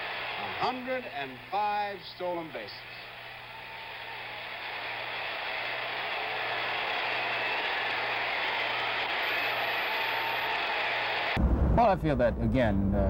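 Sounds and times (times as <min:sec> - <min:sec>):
stadium crowd cheering: 0:00.0 - 0:11.4
broadcast recording hiss: 0:00.0 - 0:13.0.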